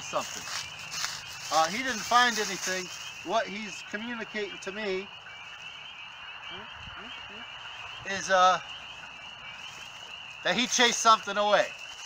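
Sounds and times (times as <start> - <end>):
frogs calling in chorus: 0.0 - 12.0.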